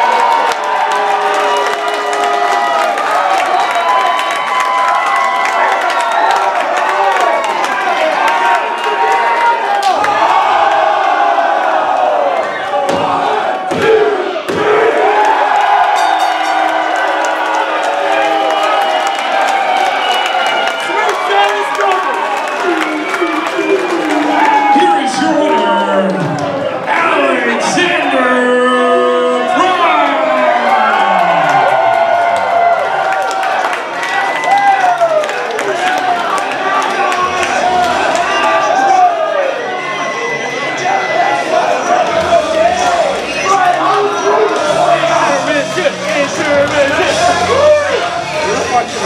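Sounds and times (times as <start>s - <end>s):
crowd shouting and cheering: 0.0s - 49.0s.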